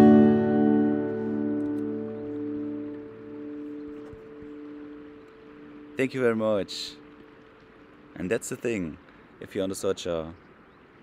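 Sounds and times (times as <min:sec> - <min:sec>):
acoustic guitar chord ringing: 0:00.0 - 0:07.5.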